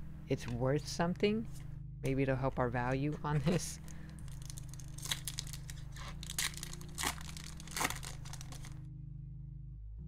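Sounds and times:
foil wrapper crinkling and tearing: 3.8s - 8.8s.

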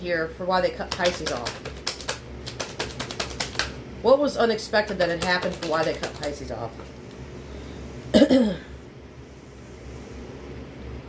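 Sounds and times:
low steady hum: 0.0s - 11.0s
rapid irregular clicking: 0.8s - 3.8s, 4.8s - 7.2s.

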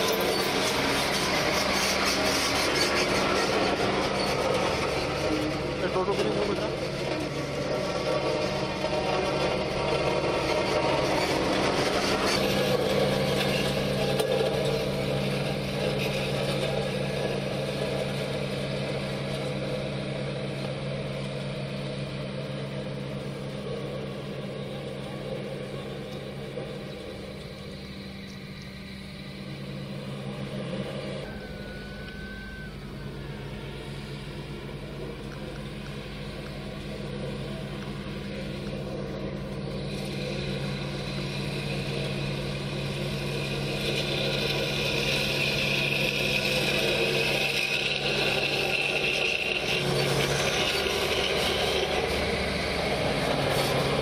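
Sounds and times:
diesel machinery engines clattering: 0.0s - 54.0s.

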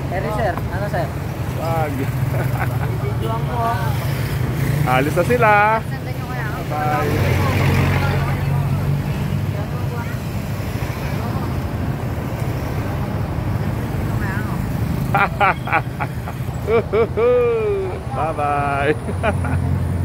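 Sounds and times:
truck engine rumbling: 0.0s - 20.0s
children calling out and laughing: 14.4s - 19.8s.

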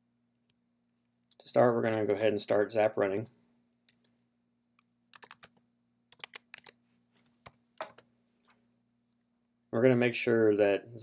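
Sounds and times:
computer keyboard typing: 5.1s - 6.8s.

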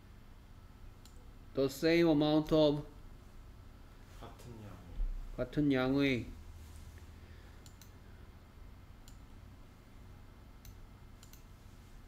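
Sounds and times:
low steady hum: 0.0s - 12.0s
computer mouse clicks: 1.0s - 1.2s, 7.6s - 8.0s, 9.0s - 9.3s, 10.6s - 11.6s.

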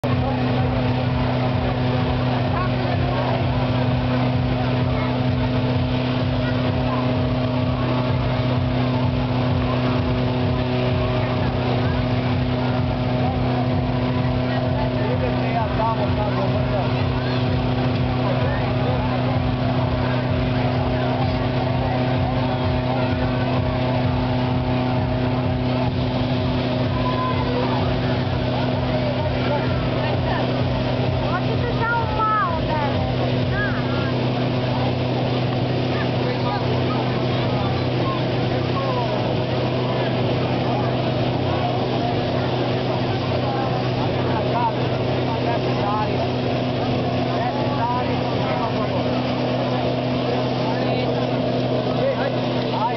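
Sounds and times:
crowd chatter: 0.0s - 52.9s
fan petrol engine running: 0.0s - 52.9s.

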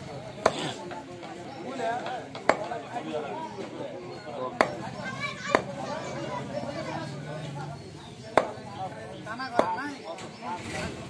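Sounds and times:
cleaver chopping into wooden block: 2.0s - 2.7s, 8.3s - 8.6s, 9.5s - 9.8s.

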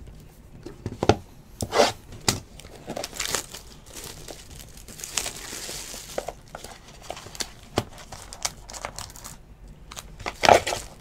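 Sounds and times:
plastic wrap tearing and crinkling: 2.3s - 11.0s.

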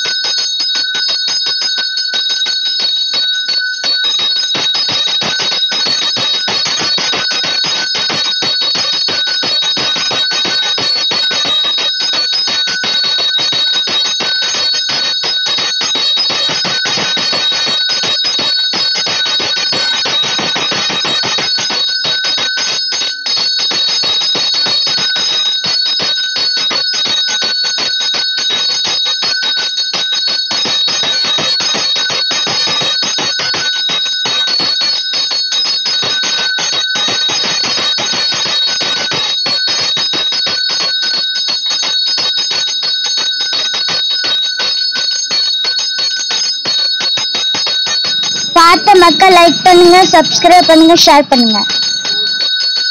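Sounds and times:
temple bell ringing rapidly: 0.0s - 52.9s.

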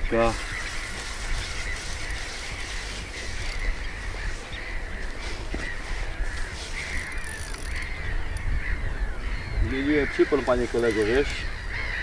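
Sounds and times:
birds calling: 0.0s - 12.0s.

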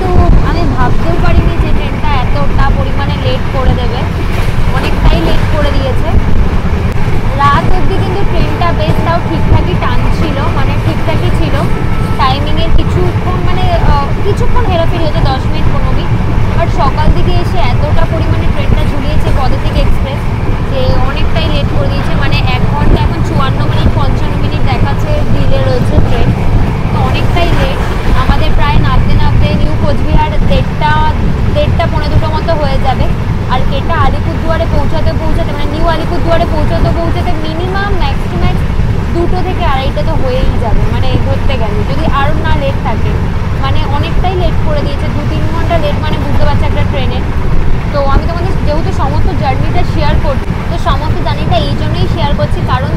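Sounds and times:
train coach rumbling: 0.0s - 52.9s
indistinct voices: 7.1s - 52.9s.

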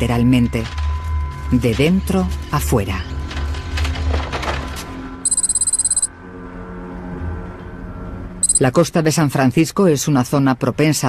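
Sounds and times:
electronic beeping trill: 5.3s - 6.1s, 8.4s - 8.7s.

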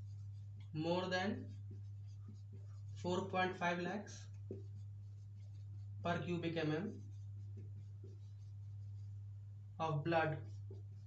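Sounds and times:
marker writing on whiteboard: 0.0s - 9.3s, 9.9s - 11.0s
steady low hum: 0.0s - 11.0s
marker tap: 4.3s - 4.8s.

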